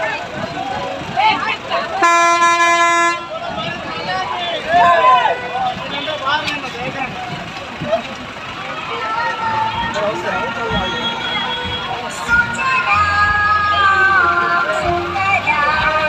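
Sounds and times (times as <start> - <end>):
crowd voices: 0.0 - 16.0
vehicle horn blast: 2.0 - 3.3, 10.7 - 12.0.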